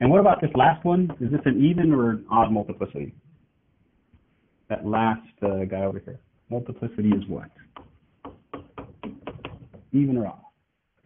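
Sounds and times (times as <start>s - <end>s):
chalk tapping and scraping on blackboard: 7.1s - 9.9s.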